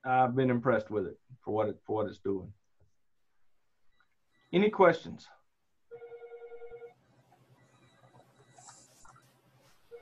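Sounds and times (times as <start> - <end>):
phone ringing: 5.9 - 7.0.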